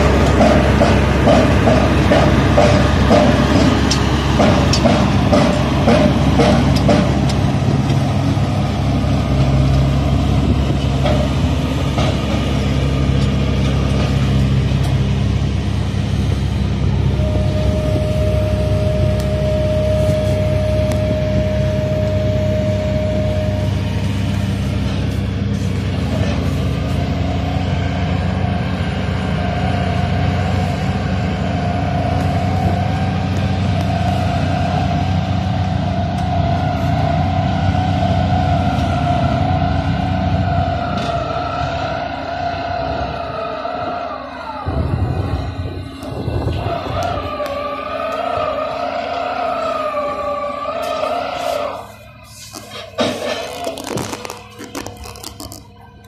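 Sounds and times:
piling machinery low drone: 0.0 - 56.0
held higher tone: 16.8 - 25.2.

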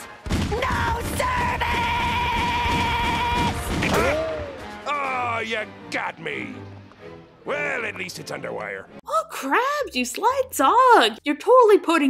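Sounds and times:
cartoon background music: 2.3 - 11.2.

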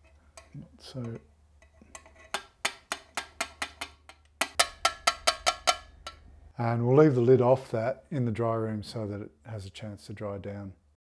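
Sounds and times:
ringing metallic taps on sieve: 3.2 - 6.2.

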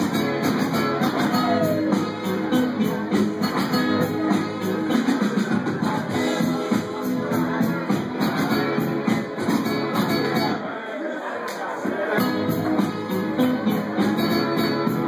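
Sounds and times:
drum beat: 0.0 - 10.5
guitar: 0.0 - 10.9, 11.5 - 15.0.

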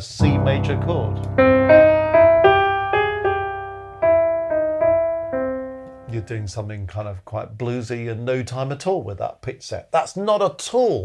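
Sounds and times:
bluesy piano notes: 0.0 - 6.6.

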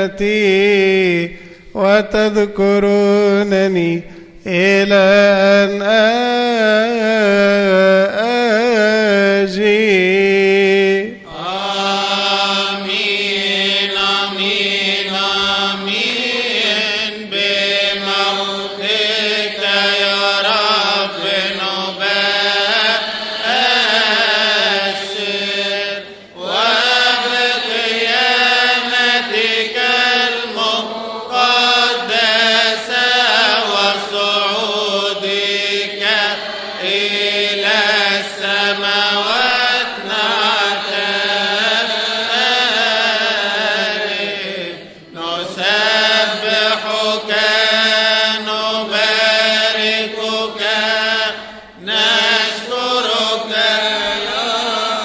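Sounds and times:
liturgical chant singing: 0.0 - 55.0.

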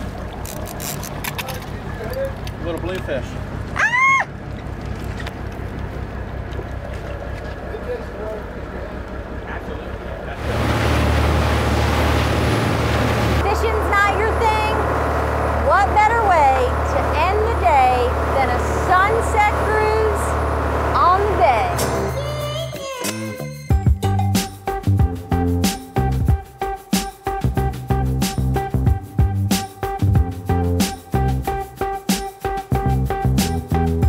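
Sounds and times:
boat engine droning: 0.0 - 22.6
wind and water rushing: 10.4 - 15.6.

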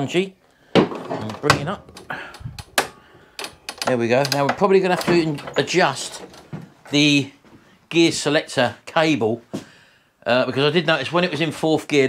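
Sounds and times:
light clicks and rattles: 1.2 - 7.1.

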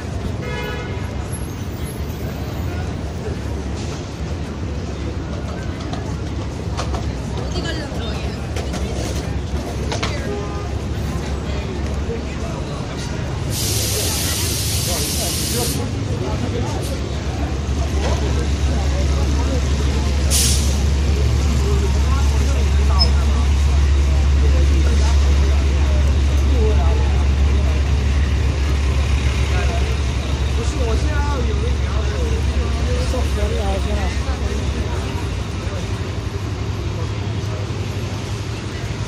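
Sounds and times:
heavy traffic rumble: 0.0 - 39.0
pedestrians chattering: 0.0 - 39.0
short hiss: 13.5 - 15.8, 20.3 - 20.8.

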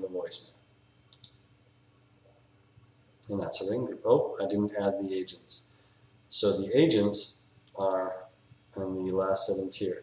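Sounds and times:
computer mouse click: 1.1 - 1.4.

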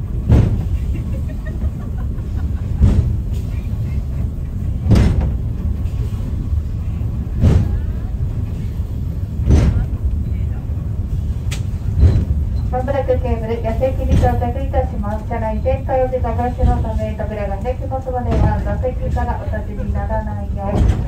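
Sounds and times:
funicular car rumbling: 0.0 - 21.0
short track knocks: 0.3 - 0.8, 4.8 - 5.6.

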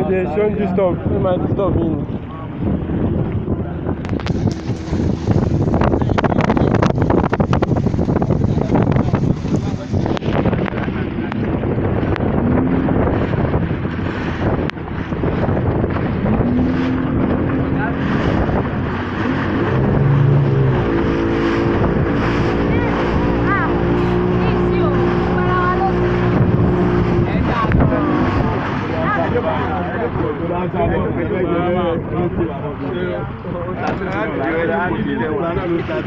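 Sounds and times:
motorboat engine running: 0.0 - 36.0
water rushing past hull: 0.0 - 36.0
wind on microphone: 0.0 - 36.0.

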